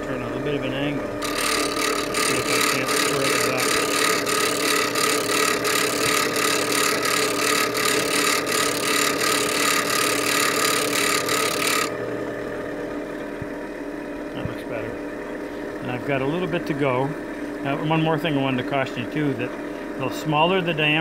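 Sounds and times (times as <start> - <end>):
bench grinder motor hum: 0.0 - 14.4.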